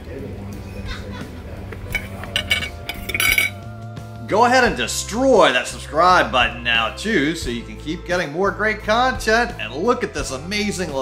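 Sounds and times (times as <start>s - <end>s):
cutlery clinking against a plate: 1.8s - 3.7s.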